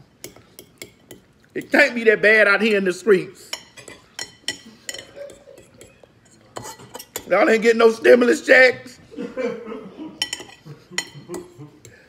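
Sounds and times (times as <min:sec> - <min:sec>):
fork clinking on plate: 0:00.2 - 0:01.9, 0:03.5 - 0:07.3, 0:10.2 - 0:12.0.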